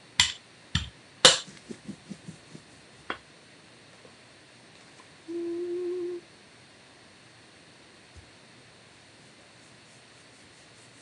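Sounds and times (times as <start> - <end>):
woman humming: 5.2 - 6.3.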